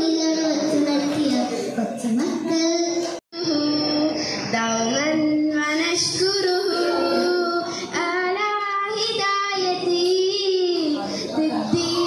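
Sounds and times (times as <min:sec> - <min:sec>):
girl singing into a microphone: 0:00.0 - 0:12.0.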